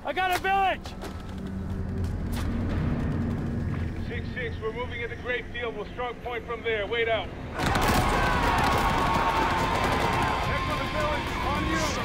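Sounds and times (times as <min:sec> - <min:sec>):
film score music: 0:00.0 - 0:12.0.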